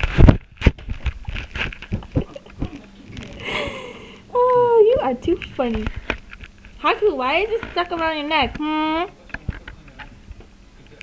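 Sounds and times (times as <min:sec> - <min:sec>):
paper bag crinkling: 0:00.0 - 0:03.4.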